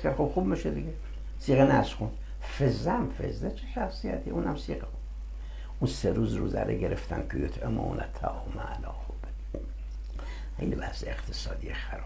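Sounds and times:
steady low hum: 0.0s - 12.0s
man speaking quietly: 10.6s - 12.0s.

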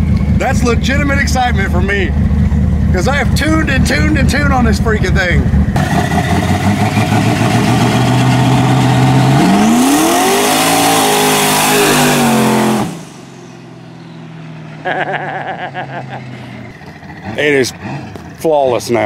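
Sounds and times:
engine accelerating hard: 0.0s - 19.0s.

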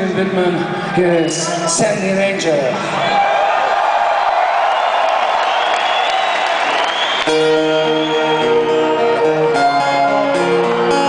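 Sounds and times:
crowd cheering and whooping: 3.0s - 9.5s.

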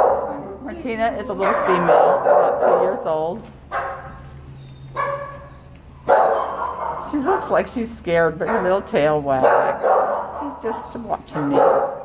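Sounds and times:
dog whining: 3.8s - 7.4s, 8.1s - 11.8s.

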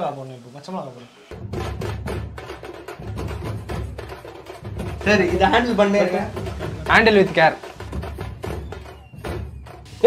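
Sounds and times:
percussive music with heavy bass: 1.3s - 10.0s.

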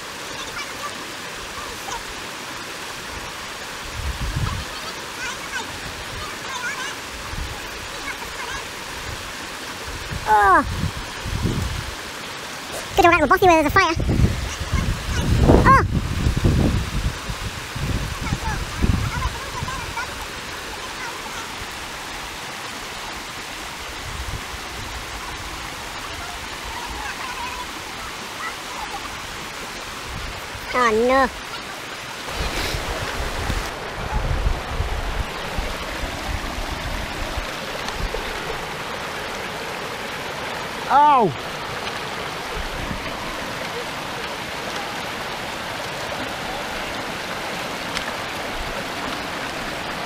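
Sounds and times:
river rushing over stones: 0.0s - 50.0s
wind buffeting microphone: 3.8s - 4.7s, 9.0s - 12.0s, 12.8s - 20.1s, 32.3s - 38.8s, 42.4s - 43.7s.

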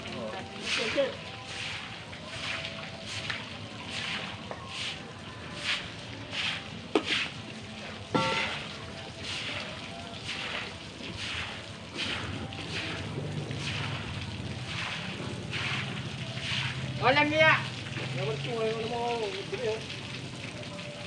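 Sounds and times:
shovel scraping wet concrete: 0.6s - 7.4s, 10.2s - 16.9s.

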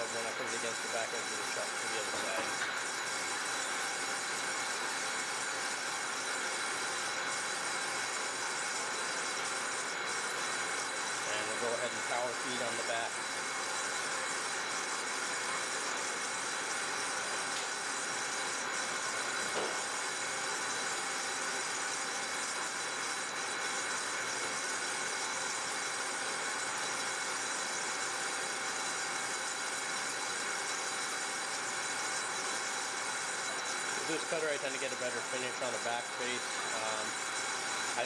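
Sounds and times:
metal lathe machining steel: 0.0s - 38.0s.

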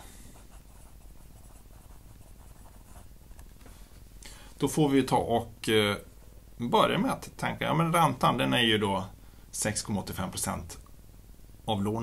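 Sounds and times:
pen scratching on paper: 0.4s - 3.1s.

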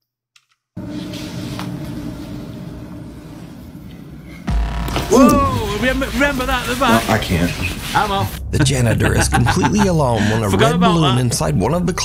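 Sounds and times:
hiss and rumble: 0.8s - 12.0s
low hum: 0.8s - 12.0s.

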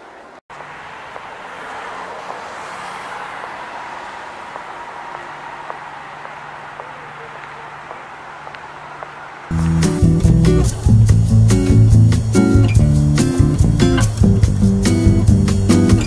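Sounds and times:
passing traffic: 0.0s - 16.0s
faint voices: 3.8s - 9.5s.

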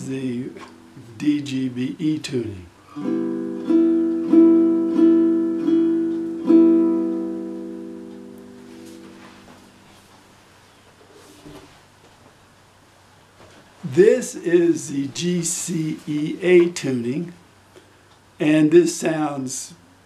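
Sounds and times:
baritone ukulele strumming: 0.0s - 1.8s, 2.9s - 9.7s.

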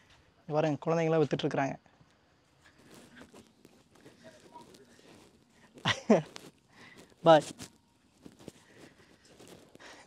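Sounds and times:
soft ticks and rustles: 0.9s - 10.0s.

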